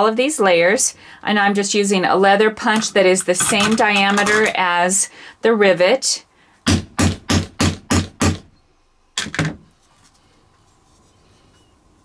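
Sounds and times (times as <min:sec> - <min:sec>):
hammer striking hole punch: 0:06.7 - 0:08.5.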